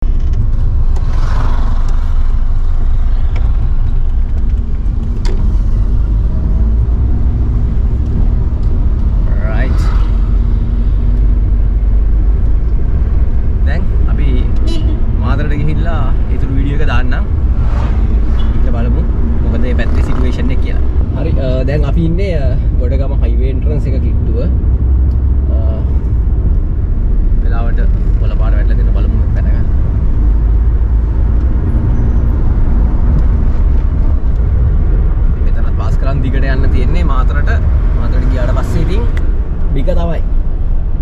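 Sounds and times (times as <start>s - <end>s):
car interior rumble: 0.0s - 41.0s
people talking: 9.3s - 9.9s, 13.6s - 17.3s, 18.2s - 24.5s, 25.5s - 26.0s, 27.4s - 29.7s, 35.4s - 40.2s.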